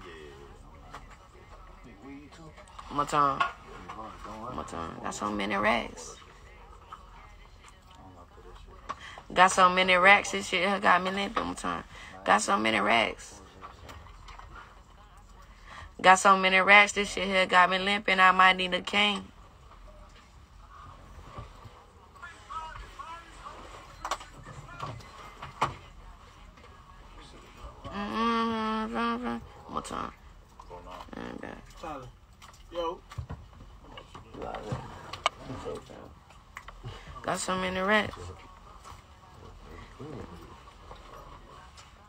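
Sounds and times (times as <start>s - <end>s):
faint indistinct voices: 0.0s - 16.6s, 19.2s - 42.0s.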